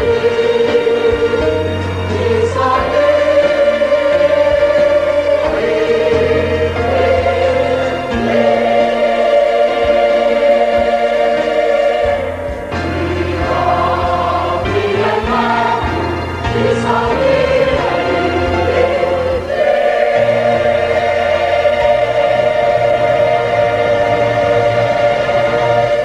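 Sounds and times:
church choir singing a hymn: 0.0s - 26.0s.

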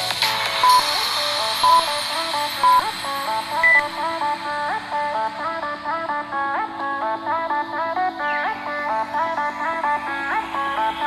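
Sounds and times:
upbeat background music: 0.0s - 11.0s
timer countdown beeps: 0.6s - 0.9s, 1.6s - 1.9s, 2.6s - 2.8s, 3.6s - 3.9s.

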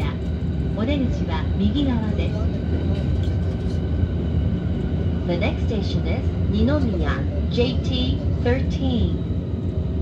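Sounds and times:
train rumbling: 0.0s - 10.0s.

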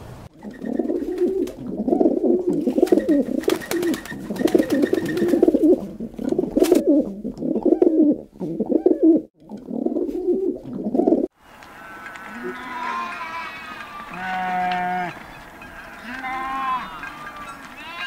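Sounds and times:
pigeons cooing: 0.4s - 11.3s.

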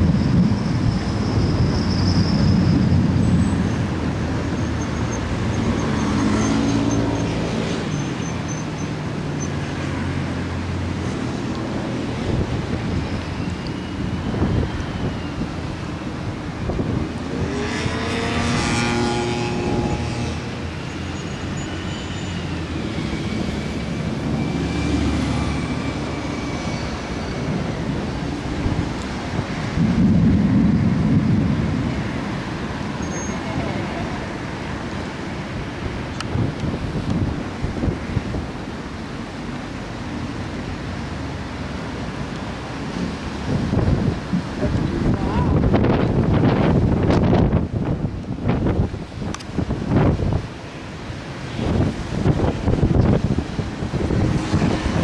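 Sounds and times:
wind buffeting microphone: 0.0s - 5.6s, 10.3s - 20.8s, 25.2s - 39.6s, 42.4s - 55.0s
passing road traffic: 0.0s - 55.0s
low rumble: 29.5s - 33.0s.

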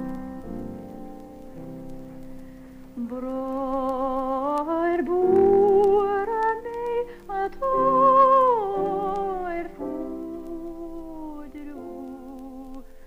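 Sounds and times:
woman singing with vibrato: 0.0s - 1.6s, 3.0s - 13.0s.

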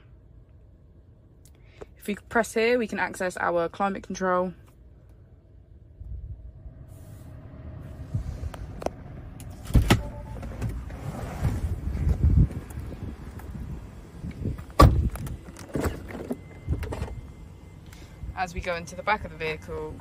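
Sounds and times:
car doors thudding shut: 9.5s - 12.3s, 14.4s - 17.2s.

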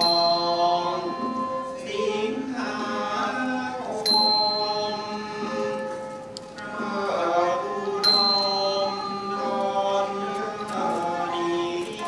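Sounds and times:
person singing long held notes: 0.0s - 12.0s.

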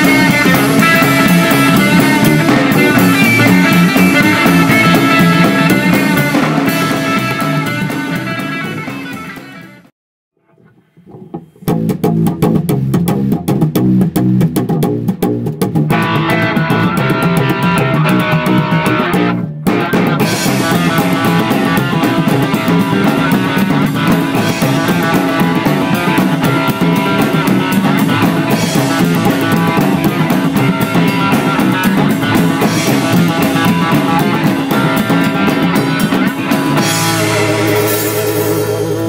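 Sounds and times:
rockabilly band instrumental: 0.0s - 9.9s, 10.5s - 39.0s.

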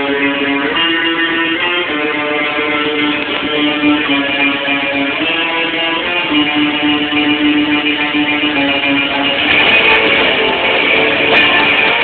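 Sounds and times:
guitar notes and chords: 0.0s - 12.0s.

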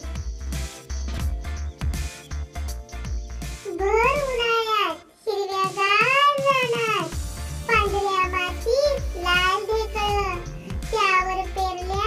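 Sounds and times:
child-like voice singing: 3.7s - 12.0s.

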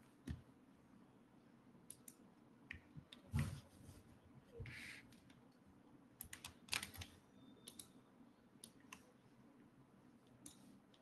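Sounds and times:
typing on computer keyboard: 6.2s - 8.0s.

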